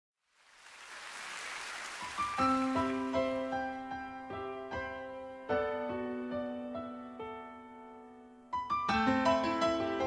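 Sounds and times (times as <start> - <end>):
audience applause: 0.4 - 3.8
piano chords and notes: 2.0 - 10.0.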